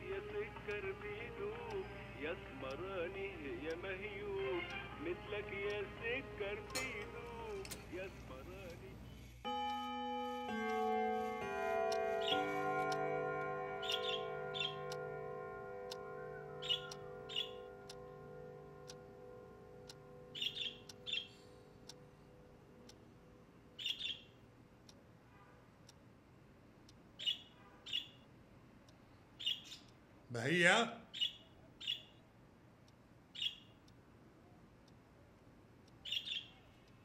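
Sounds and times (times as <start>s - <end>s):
clock ticking: 0.0s - 25.2s, 25.8s - 37.0s
wall clock chiming: 9.4s - 24.2s
budgerigars chirping: 13.8s - 14.9s, 16.6s - 17.7s, 20.3s - 21.4s, 23.8s - 24.3s, 27.2s - 28.2s, 29.4s - 29.9s, 31.2s - 32.1s, 33.4s - 33.7s, 36.0s - 36.5s.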